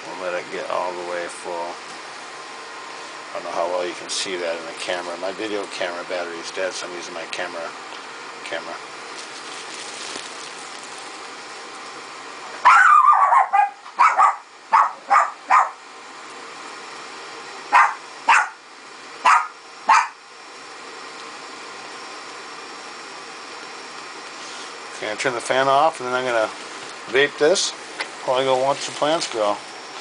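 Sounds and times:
vaporizer fan hissing: 0.0s - 30.0s
dog barking: 12.6s - 15.8s, 17.7s - 18.6s, 19.2s - 20.2s.

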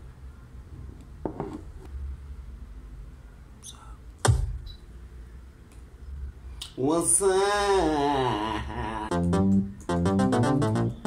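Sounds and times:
heavy thunk: 4.2s - 4.6s.

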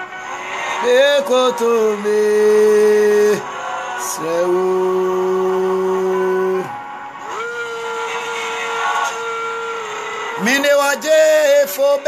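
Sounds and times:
man singing unaccompanied: 0.8s - 6.8s, 10.3s - 12.0s.

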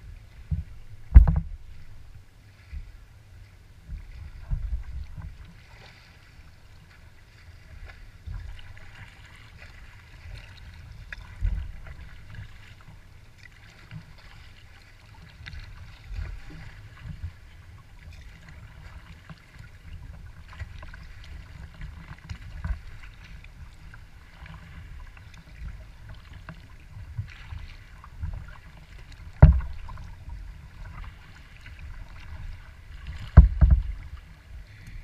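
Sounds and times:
waves lapping against kayak: 0.0s - 35.0s
faint splashing: 0.1s - 35.0s
sharp knock on hull: 0.5s - 1.9s, 29.3s - 30.2s, 33.2s - 34.2s.

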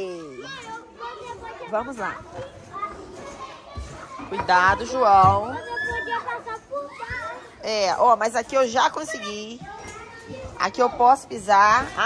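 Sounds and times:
children's voices echoing: 0.0s - 12.0s.

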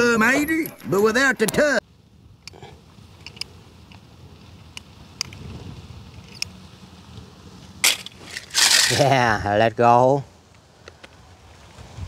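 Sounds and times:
toy cars rattling in basket: 7.8s - 9.2s.

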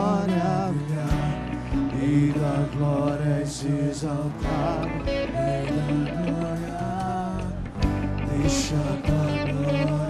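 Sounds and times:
worship music melody over chords: 0.0s - 10.0s.

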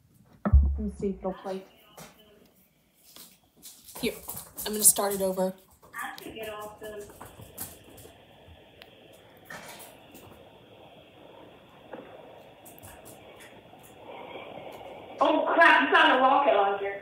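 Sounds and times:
muffled telephone line noise: 0.9s - 17.0s.

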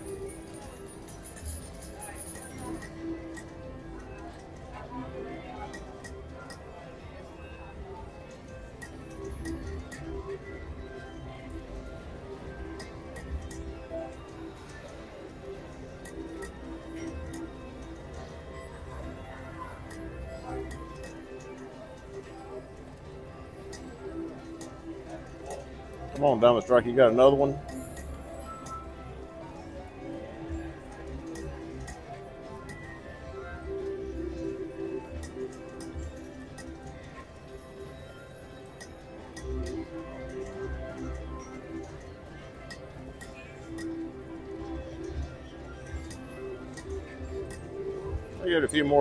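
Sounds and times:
slot machine music: 0.0s - 49.0s
slot machine reels spinning: 0.0s - 49.0s.

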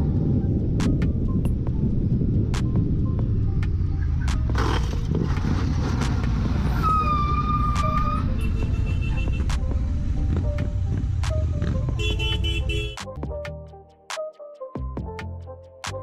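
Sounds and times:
motorcycle running: 0.0s - 6.8s, 8.1s - 13.0s
wind rumble on microphone: 0.0s - 12.0s
music with a tune: 7.8s - 16.0s
vehicle horn: 8.2s - 9.5s, 11.9s - 13.0s.

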